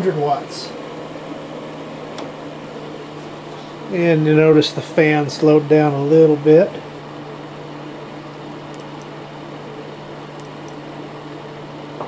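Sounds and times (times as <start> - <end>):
electric heater fan whooshing: 0.0 - 12.0.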